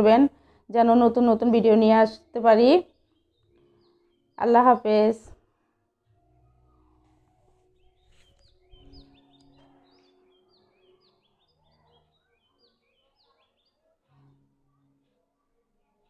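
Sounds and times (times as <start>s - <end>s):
faint bird chirping: 6.1s - 16.0s.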